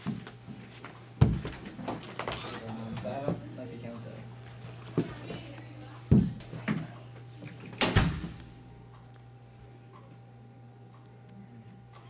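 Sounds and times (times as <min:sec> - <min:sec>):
door shutting: 0:07.7 - 0:08.4.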